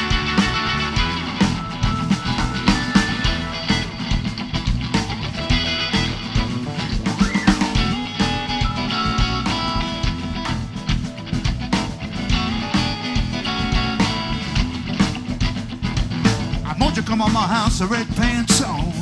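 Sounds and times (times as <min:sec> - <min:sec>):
bass guitar: 0:00.0 - 0:19.0
drum kit: 0:00.0 - 0:19.0
electric guitar: 0:00.0 - 0:19.0
keyboard: 0:00.0 - 0:19.0.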